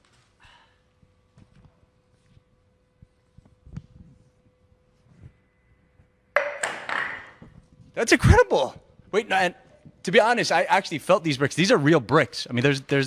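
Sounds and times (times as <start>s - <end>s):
pieces knocking as they fall: 6.4s - 7.5s.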